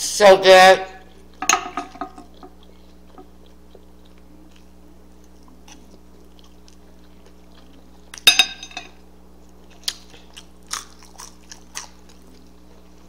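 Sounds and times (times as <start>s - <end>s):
low steady hum: 0.0s - 13.0s
person chewing food: 1.0s - 8.3s, 8.9s - 13.0s.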